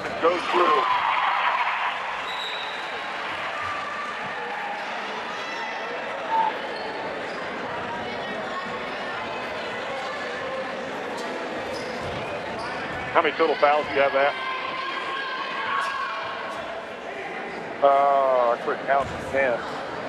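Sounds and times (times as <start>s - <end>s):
spectator chatter echoing: 0.0s - 18.0s.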